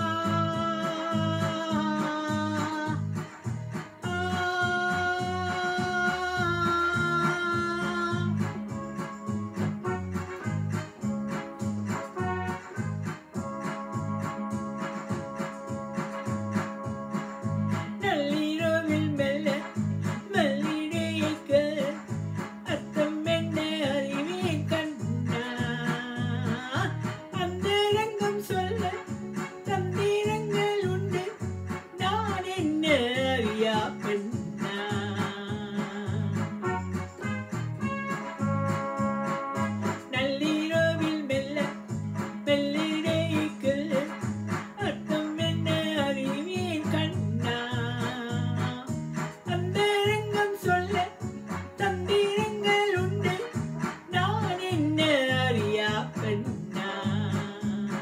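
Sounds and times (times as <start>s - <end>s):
woman singing: 0.0s - 3.2s, 4.0s - 8.5s, 17.9s - 36.9s, 39.9s - 58.0s
electronic keyboard accompaniment: 0.0s - 58.0s
plucked guitar-like notes: 0.0s - 58.0s.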